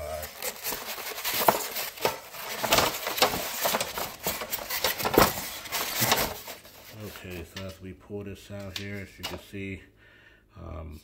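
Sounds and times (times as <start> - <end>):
metal scraping against foam: 0.0 - 7.6.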